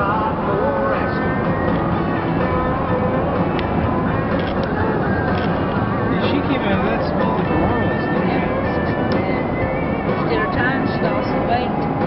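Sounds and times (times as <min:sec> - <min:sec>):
country song with singing: 0:00.0 - 0:06.1, 0:06.8 - 0:12.0
road and engine noise: 0:00.0 - 0:12.0.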